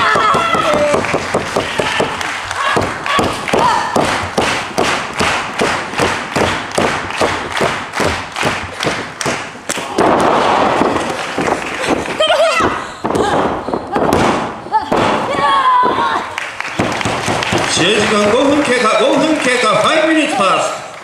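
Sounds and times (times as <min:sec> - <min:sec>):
crowd clapping in unison: 0:00.0 - 0:12.7, 0:16.2 - 0:21.0
crowd noise: 0:00.0 - 0:21.0.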